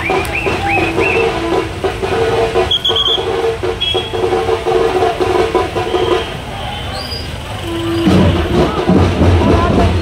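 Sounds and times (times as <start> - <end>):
crowd and vehicle rumble: 0.0 - 10.0.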